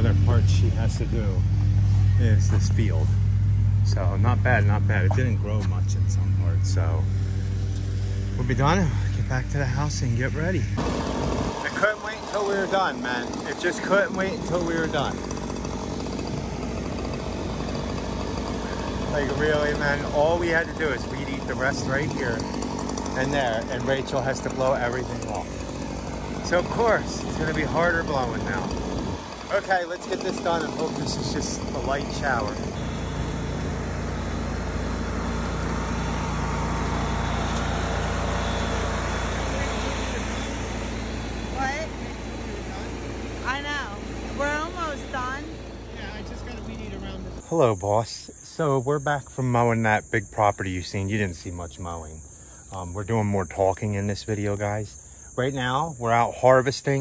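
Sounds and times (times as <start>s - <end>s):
lawn mower engine humming: 0.0s - 57.0s.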